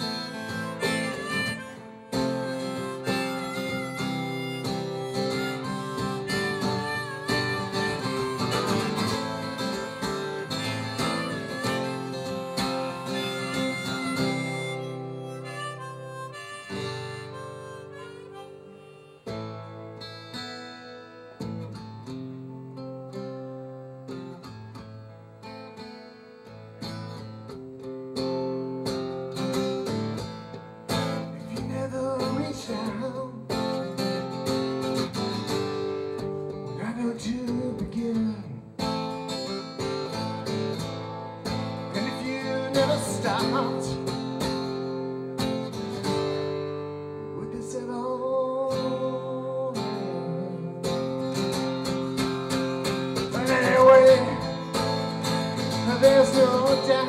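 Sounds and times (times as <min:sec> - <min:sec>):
harmonica: 0:00.0 - 0:22.1, 0:28.5 - 0:37.3, 0:38.8 - 0:47.8, 0:48.7 - 0:57.0
strummed acoustic guitar: 0:00.0 - 0:57.0.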